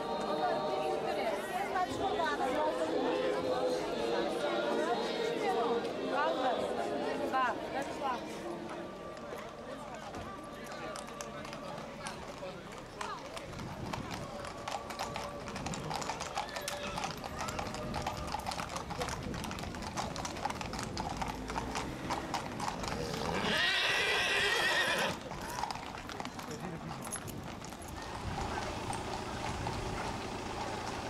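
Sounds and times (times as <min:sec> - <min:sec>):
crowd voices: 0:00.0 - 0:31.0
hooves clip-clopping on pavement: 0:03.4 - 0:31.0
horse whinnying: 0:21.7 - 0:25.3.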